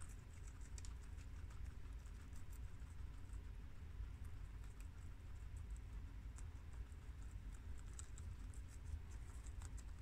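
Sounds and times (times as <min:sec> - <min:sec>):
guinea pigs crunching lettuce: 0:00.0 - 0:10.0.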